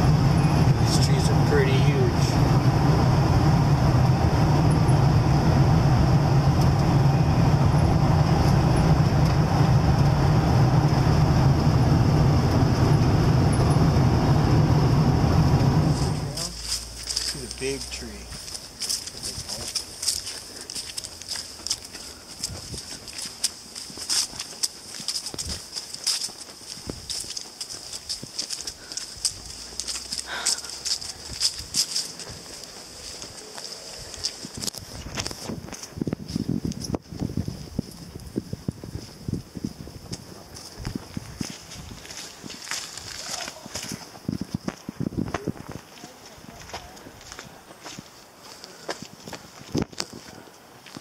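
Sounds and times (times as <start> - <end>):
footsteps on dry leaves: 15.9 - 51.0.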